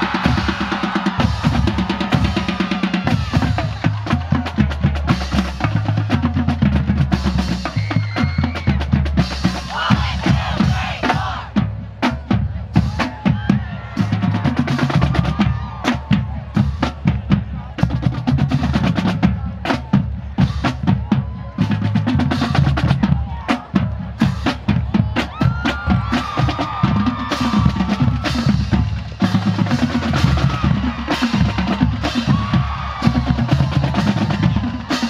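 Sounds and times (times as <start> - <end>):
bass drums: 0.0 - 35.0
snare drums: 0.0 - 35.0.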